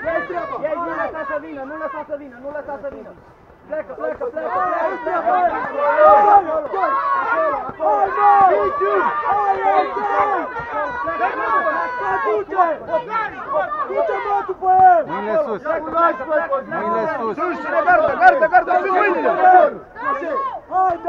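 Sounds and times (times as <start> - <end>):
men shouting encouragement: 0.0 - 3.1, 3.7 - 21.0.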